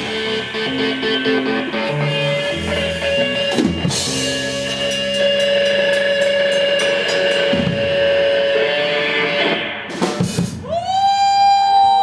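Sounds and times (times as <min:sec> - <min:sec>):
electric guitar and bass ringing: 0:00.0 - 0:10.3.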